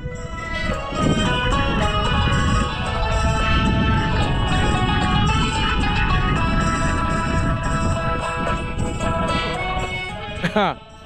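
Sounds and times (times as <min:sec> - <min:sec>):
song from phone speaker: 0:00.0 - 0:11.0
wind on microphone: 0:00.0 - 0:11.0.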